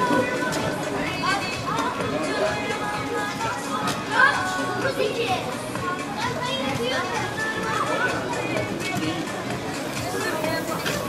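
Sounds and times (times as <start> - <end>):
background music: 0.0 - 11.0
crowd of bathers talking: 0.0 - 11.0.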